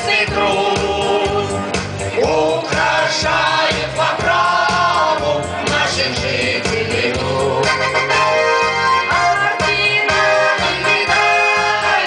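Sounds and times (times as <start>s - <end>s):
accompaniment with steady beat: 0.0s - 12.0s
mixed choir singing over loudspeaker: 0.0s - 12.0s.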